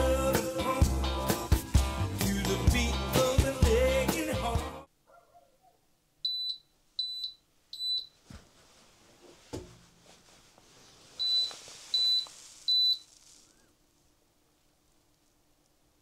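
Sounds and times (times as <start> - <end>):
inverter alarm short high beeps: 6.3 - 8.2, 11.2 - 13.1.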